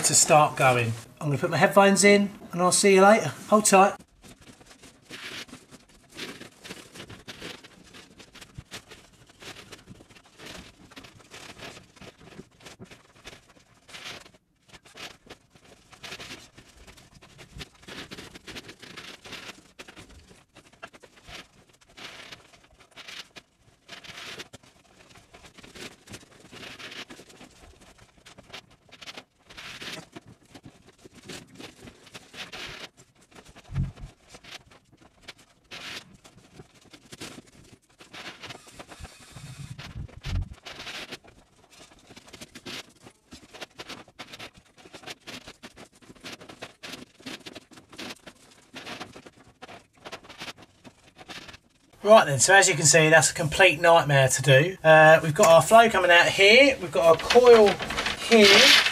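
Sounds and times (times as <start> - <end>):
plastic pipe scraping and rustling: 0.0 - 58.9
heavy thumps: 33.7 - 34.1.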